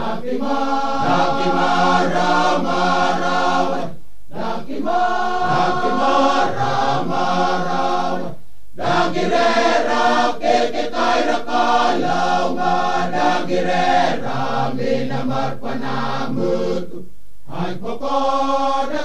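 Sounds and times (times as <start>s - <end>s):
male choir singing in harmony: 0.0s - 19.0s.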